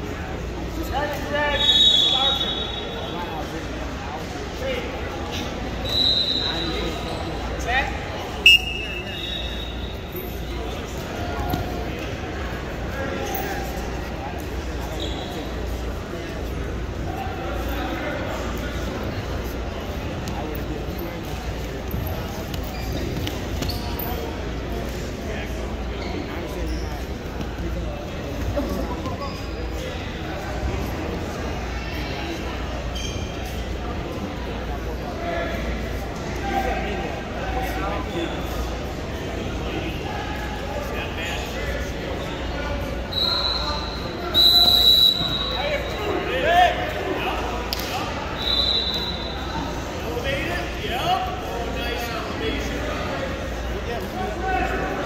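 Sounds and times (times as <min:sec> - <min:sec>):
background chatter in hall: 0:00.0 - 0:55.0
whistle blasts: 0:01.5 - 0:03.1, 0:05.8 - 0:06.8, 0:08.4 - 0:10.1, 0:43.1 - 0:45.9, 0:48.3 - 0:49.4.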